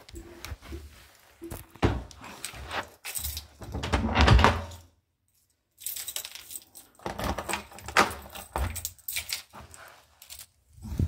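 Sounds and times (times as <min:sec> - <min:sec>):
keys jangling at a door lock: 0:02.4 - 0:03.7, 0:04.7 - 0:10.6.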